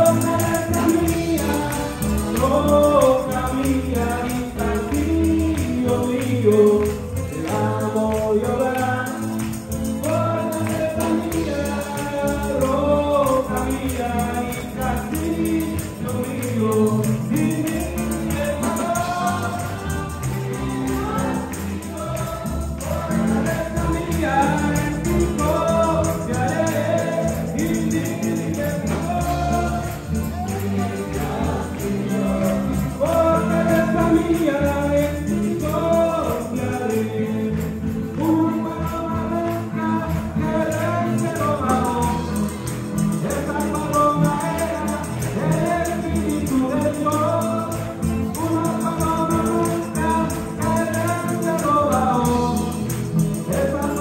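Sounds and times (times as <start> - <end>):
congregation singing: 0.0 - 54.0
instrumental accompaniment with bass: 0.0 - 54.0
keyboard: 0.0 - 54.0
rhythmic hand clapping: 0.0 - 54.0
steady percussion beat: 0.0 - 54.0.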